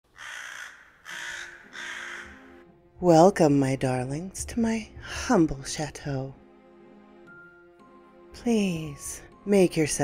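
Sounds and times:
crow cawing: 0.1s - 2.6s.

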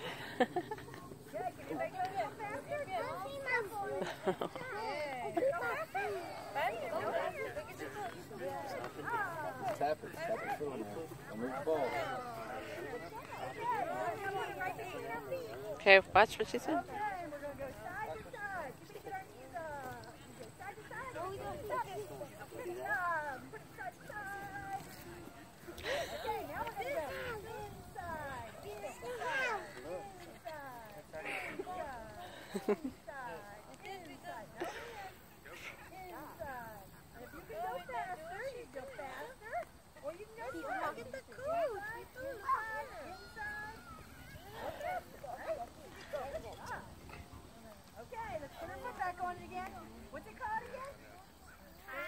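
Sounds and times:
children talking and calling: 0.0s - 52.0s
outdoor background noise: 0.0s - 52.0s.

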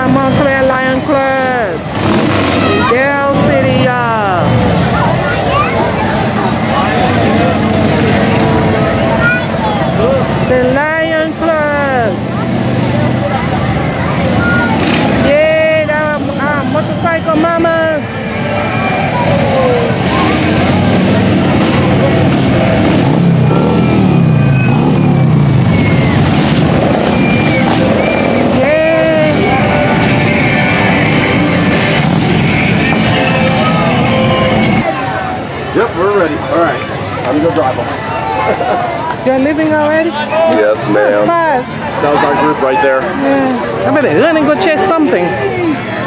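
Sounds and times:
crowd chatter: 0.0s - 46.0s
motorcycle engines passing: 0.0s - 46.0s
rising and falling whoops: 23.4s - 28.5s.

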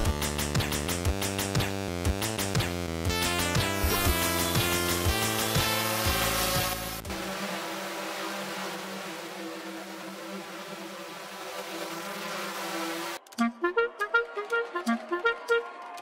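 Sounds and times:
electronic music with beat: 0.0s - 7.1s, 13.2s - 16.0s
quadcopter drone buzzing: 3.2s - 13.5s.

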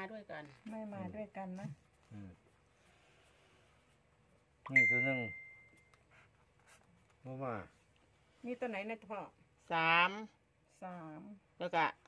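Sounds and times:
person speaking: 4.7s - 5.6s
high bell-like ding: 4.7s - 5.9s.

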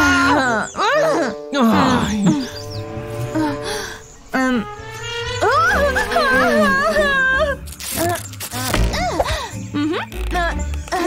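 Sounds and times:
background music: 0.0s - 11.0s
woman wailing: 5.4s - 7.6s.

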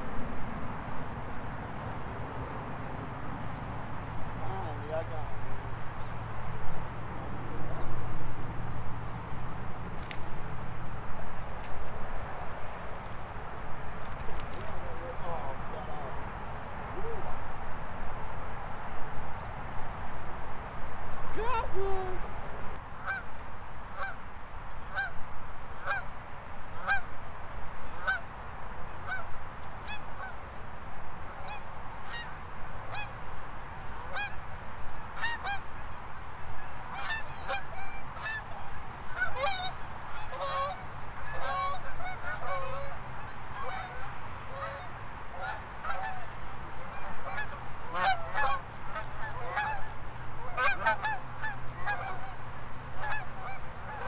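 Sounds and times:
birds calling: 33.9s - 52.4s.

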